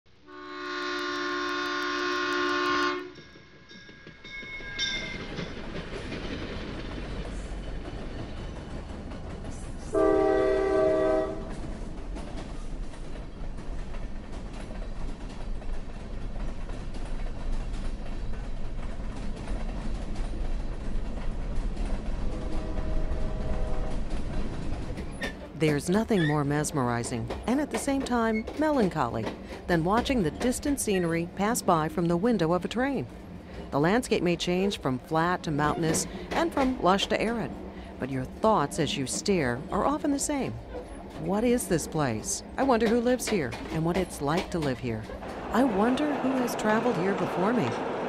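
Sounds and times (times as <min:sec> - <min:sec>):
train horn: 0:00.2 - 0:03.2, 0:09.9 - 0:11.6, 0:22.3 - 0:24.1
moving train rumble: 0:00.5 - 0:48.0.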